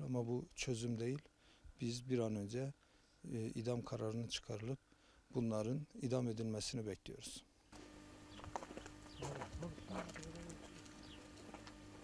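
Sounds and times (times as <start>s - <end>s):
low steady hum: 0.0s - 12.0s
birds chirping: 7.6s - 12.0s.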